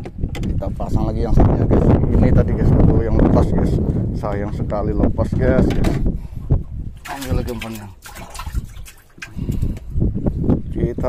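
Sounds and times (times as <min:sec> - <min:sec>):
water splashing in bucket: 0:07.0 - 0:09.7.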